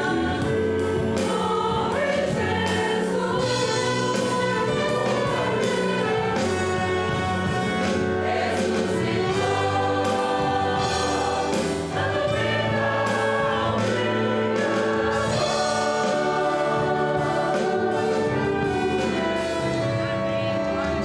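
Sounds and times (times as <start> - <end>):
church choir singing a hymn: 0.0 - 21.0
instrumental accompaniment: 0.0 - 21.0.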